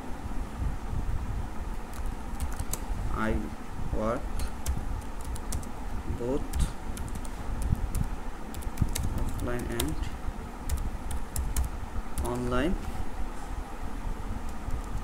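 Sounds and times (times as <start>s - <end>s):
steady low rumble: 0.0s - 15.0s
computer keyboard typing: 1.8s - 2.9s, 4.4s - 5.7s, 6.4s - 10.0s, 10.7s - 12.6s, 14.5s - 15.0s.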